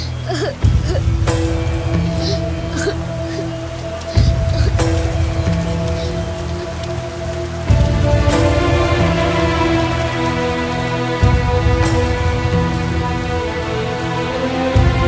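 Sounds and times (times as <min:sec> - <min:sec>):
deep rumble: 0:00.0 - 0:15.0
film music with held notes: 0:00.0 - 0:15.0
heavy rain: 0:00.0 - 0:15.0.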